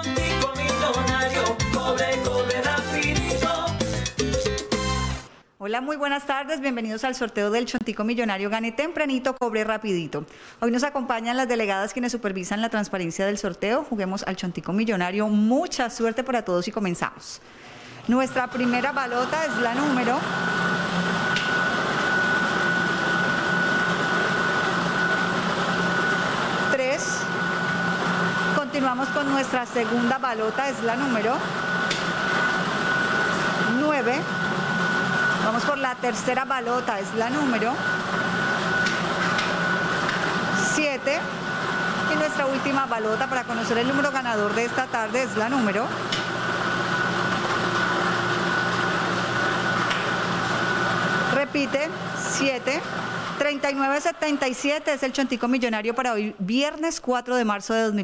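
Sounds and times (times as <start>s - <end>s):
blower rushing air with whine: 17.6s - 56.0s.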